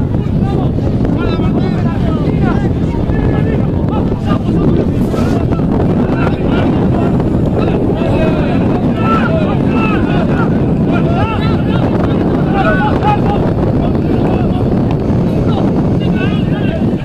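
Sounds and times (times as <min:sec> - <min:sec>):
distant shouting voices: 0:00.0 - 0:17.0
wind buffeting microphone: 0:00.0 - 0:17.0.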